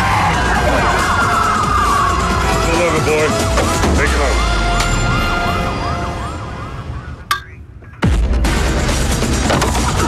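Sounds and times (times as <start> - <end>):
police siren yelping: 4.3 - 7.3.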